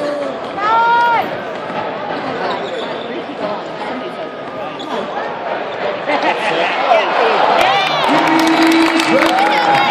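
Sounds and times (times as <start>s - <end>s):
crowd chatter and shouting: 0.0s - 9.9s
loud held shout: 7.6s - 9.9s.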